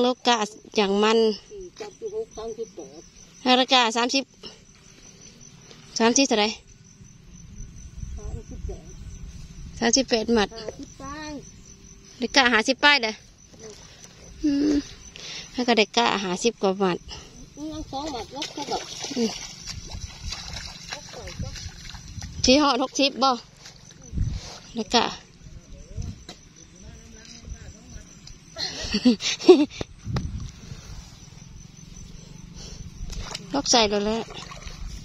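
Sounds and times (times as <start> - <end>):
insects trilling: 0.0 - 35.0
low rumble: 6.8 - 12.1
wet mud squelching and sloshing: 18.0 - 24.8, 32.9 - 35.0.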